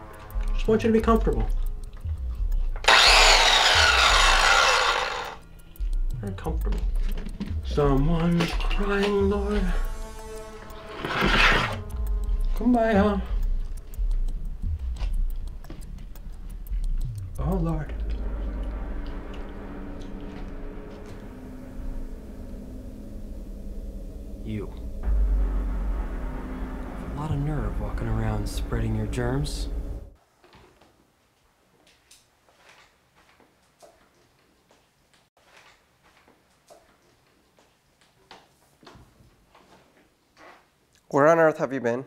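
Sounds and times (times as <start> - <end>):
low hum: 0.0 - 7.1, 7.7 - 30.2
electric circular saw whining: 2.8 - 5.4.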